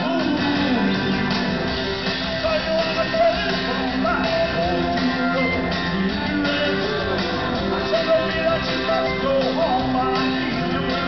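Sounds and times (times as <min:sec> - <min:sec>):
man singing lead vocal: 0:00.0 - 0:01.7, 0:02.3 - 0:11.0
live rock band playing: 0:00.0 - 0:11.0.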